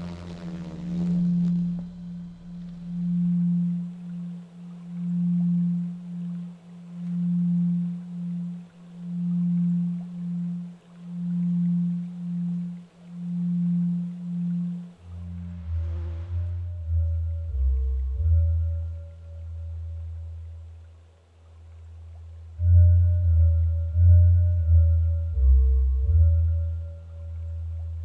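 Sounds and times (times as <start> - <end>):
pulsing low pure tone: 0.0 - 28.0.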